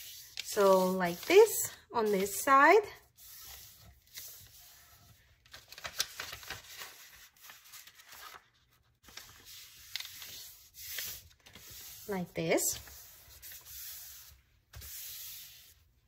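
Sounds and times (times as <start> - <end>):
paper crackles: 0.0 - 2.5, 3.2 - 13.9
paper rustling and rubbing: 0.0 - 16.0.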